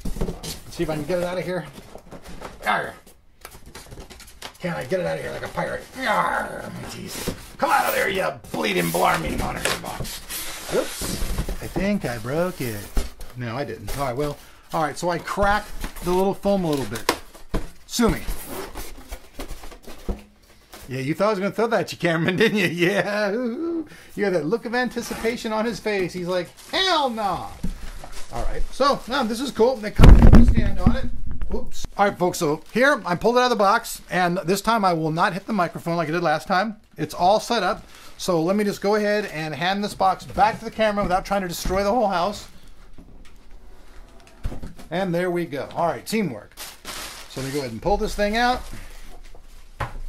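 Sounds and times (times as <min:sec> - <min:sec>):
foam and cardboard rustling: 0:00.0 - 0:21.0, 0:24.9 - 0:31.2, 0:46.6 - 0:50.0.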